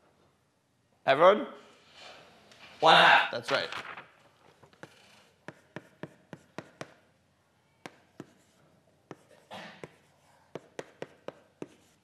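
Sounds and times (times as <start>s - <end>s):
chalk tapping on blackboard: 4.8s - 7.0s, 7.8s - 12.0s.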